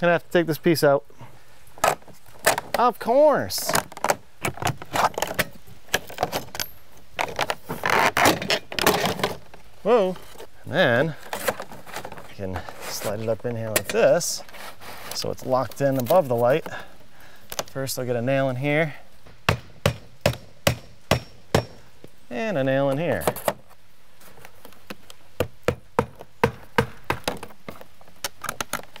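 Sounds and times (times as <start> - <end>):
vinyl siding clicking and snapping: 3.6 - 9.6, 24.4 - 29.0
siding panel scraping rattle: 7.2 - 9.6
hammer striking nail: 19.5 - 21.8.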